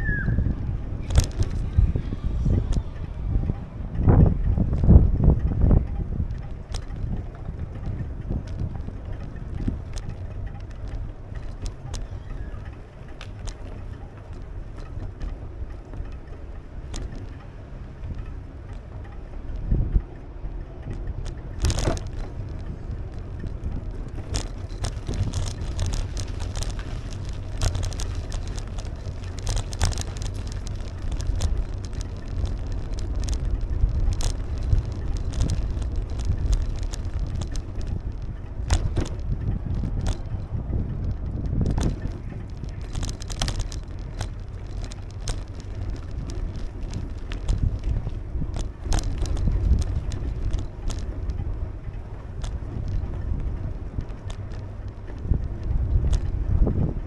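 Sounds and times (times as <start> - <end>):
bicycle clicks and rattles: 0.0 - 57.0
wind noise on microphone: 0.0 - 57.0.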